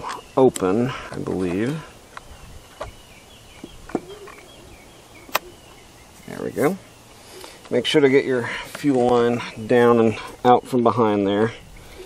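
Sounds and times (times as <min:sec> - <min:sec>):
faint high chirping: 0:02.4 - 0:08.3.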